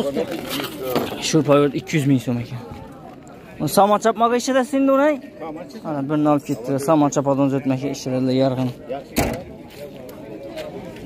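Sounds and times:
faint voices talking: 0.0 - 11.0
short thump: 9.2 - 9.5.

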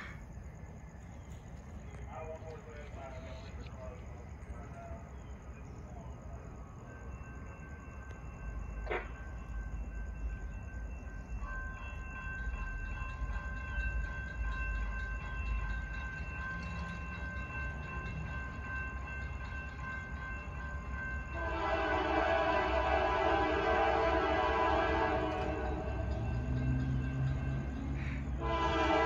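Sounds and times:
freight train rumbling: 0.0 - 29.0
distant train horn: 8.8 - 9.2, 21.3 - 29.0
locomotive air horn chord: 21.4 - 26.1, 28.0 - 29.0.

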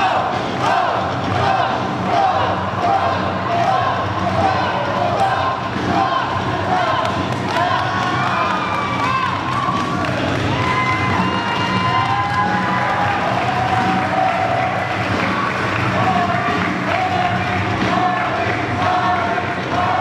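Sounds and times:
crowd cheering and shouting: 0.0 - 20.0.

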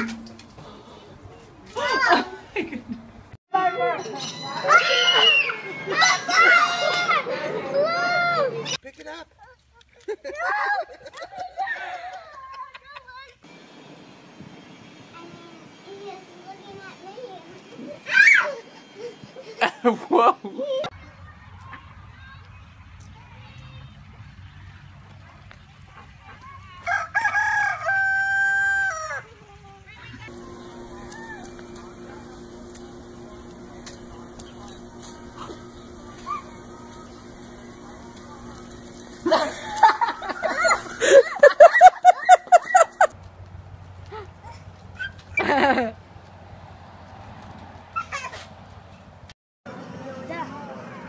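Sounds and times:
rooster crowing: 26.9 - 29.3
steady low hum: 30.3 - 41.4.

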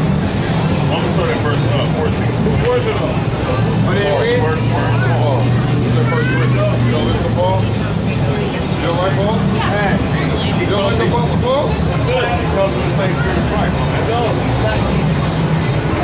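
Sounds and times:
passing traffic: 0.0 - 16.0
vehicle engine hum: 0.0 - 16.0
voices talking: 0.0 - 16.0.

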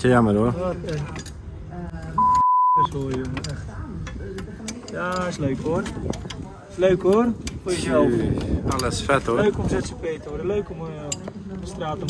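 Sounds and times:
high-pitched censor beep: 2.2 - 2.9.

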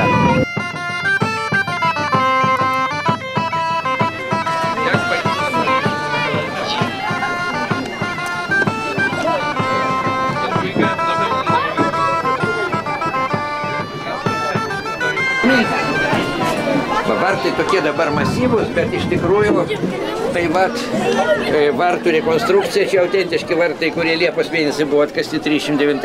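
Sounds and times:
wind instrument melody: 0.0 - 25.2
faint voices: 0.0 - 26.0.

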